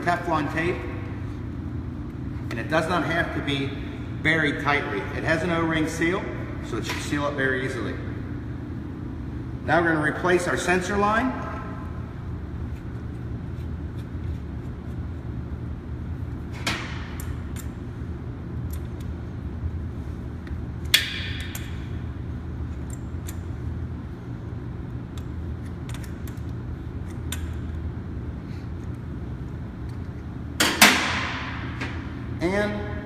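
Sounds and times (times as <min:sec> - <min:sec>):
steady low hum: 0:00.0 - 0:33.0.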